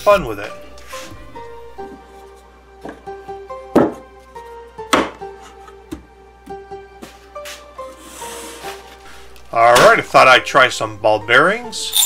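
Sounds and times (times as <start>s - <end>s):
background music: 0.0s - 12.0s
wooden block knocking on tray: 3.7s - 4.1s, 4.9s - 5.3s.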